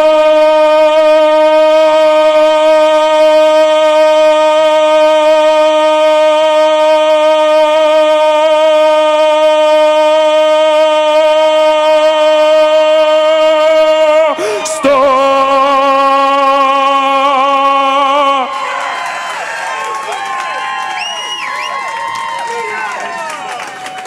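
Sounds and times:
man holding sung note: 0.0s - 18.7s.

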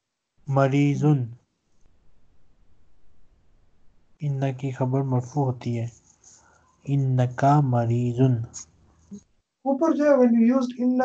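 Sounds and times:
man's voice: 0.5s - 1.4s, 4.2s - 5.9s, 6.9s - 8.6s, 9.7s - 11.0s.

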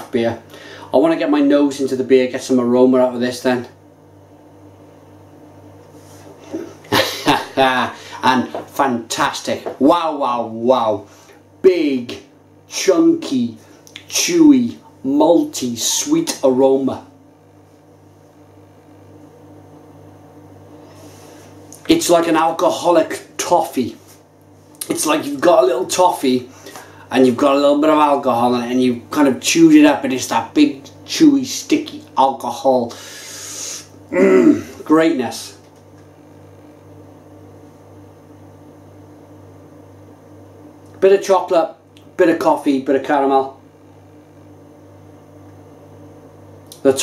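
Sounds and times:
low electrical hum: 0.0s - 47.0s.

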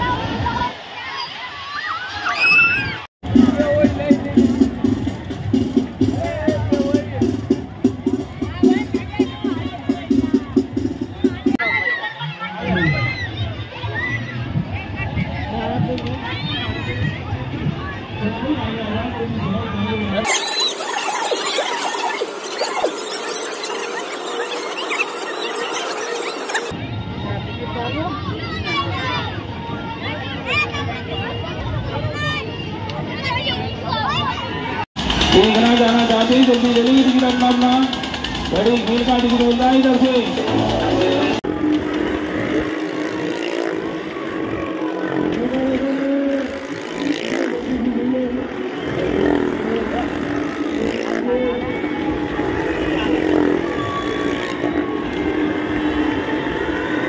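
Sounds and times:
steady noisy din: 3.2s - 11.6s, 20.2s - 27.7s, 34.7s - 57.0s
high-pitched squeals: 20.2s - 26.8s, 48.7s - 57.0s
small car engines droning: 35.0s - 57.0s.

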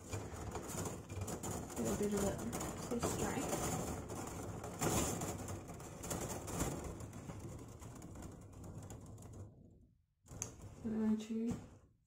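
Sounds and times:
wire rustling and clicking: 0.0s - 10.9s.

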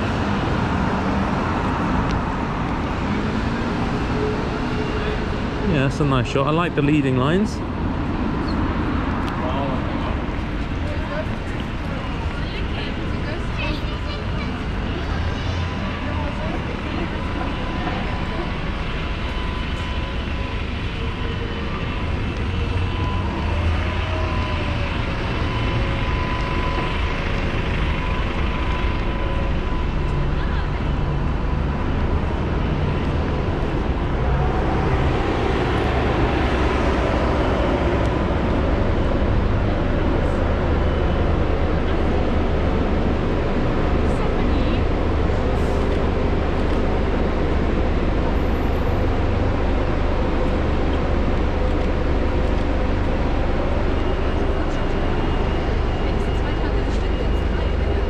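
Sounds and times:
bus pulling past: 0.0s - 58.0s
traffic rumble of engines and tyres: 0.0s - 58.0s.

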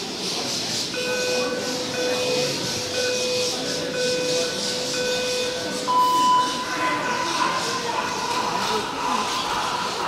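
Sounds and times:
short countdown beeps: 1.0s - 6.7s.

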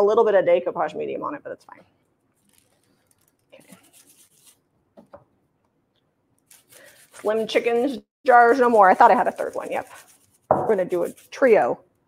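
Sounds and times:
faint rubbing and handling: 2.0s - 4.7s, 6.4s - 11.7s.

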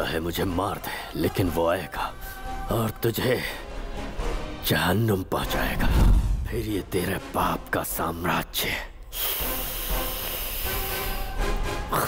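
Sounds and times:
faint background music: 0.0s - 12.0s
steady high hiss: 9.1s - 11.3s.

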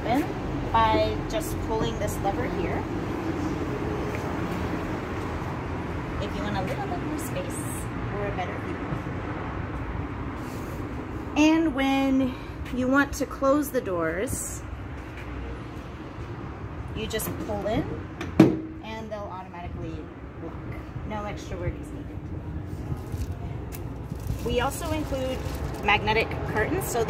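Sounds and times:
low outdoor rumble: 0.0s - 27.0s
low outdoor background rumble: 15.5s - 27.0s.

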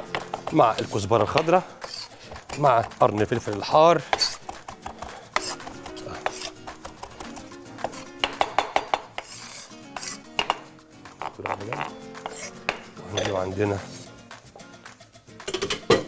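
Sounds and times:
knife chopping on wooden board: 0.0s - 9.4s, 10.0s - 13.4s.

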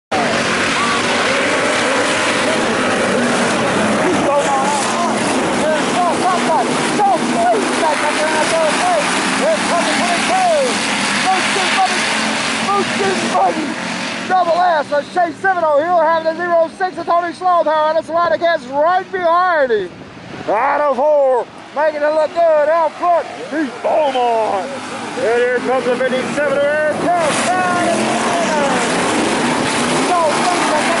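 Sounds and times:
race car engines roaring: 0.1s - 31.0s.

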